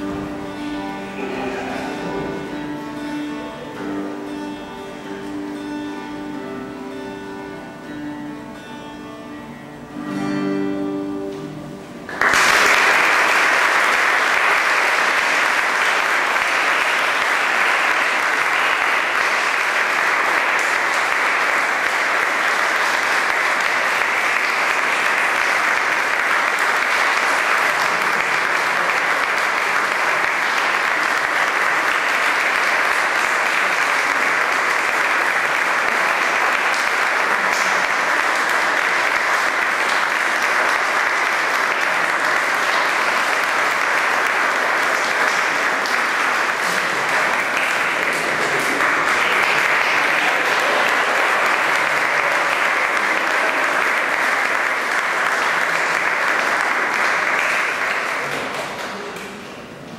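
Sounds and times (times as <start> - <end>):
audience applauding: 0.0 - 4.6, 12.0 - 59.9.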